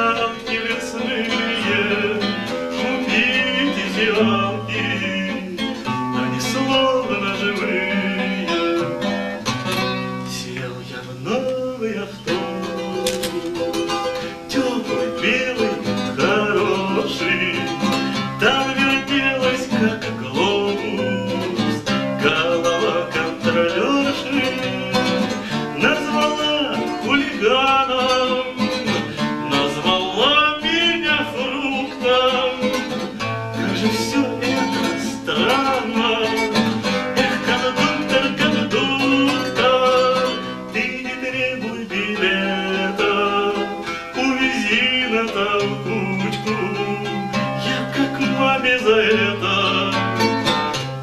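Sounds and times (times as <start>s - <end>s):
acoustic guitar: 0.0s - 51.0s
man singing: 0.0s - 51.0s.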